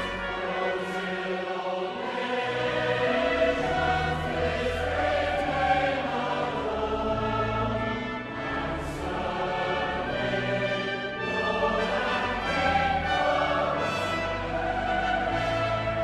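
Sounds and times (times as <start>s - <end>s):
choir singing held chords: 0.0s - 16.0s.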